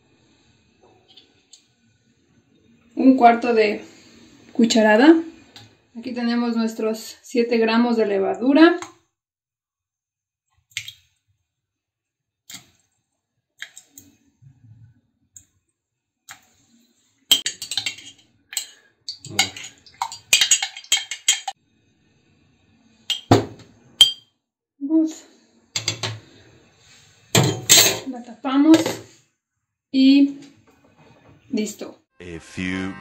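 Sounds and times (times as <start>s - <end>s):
metal spoon clinking in glass mug: 17.3s - 21.5s, 24.0s - 24.2s.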